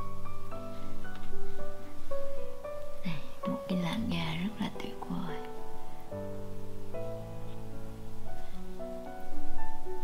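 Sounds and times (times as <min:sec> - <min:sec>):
gentle piano background music: 0:00.0 - 0:10.0
woman speaking softly: 0:03.0 - 0:05.5.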